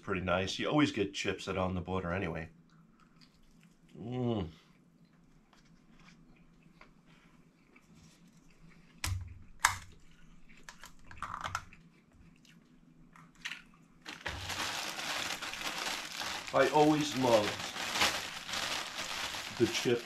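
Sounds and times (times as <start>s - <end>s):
faint chewing: 2.6s - 14.0s
plastic bag crinkling: 14.0s - 20.0s.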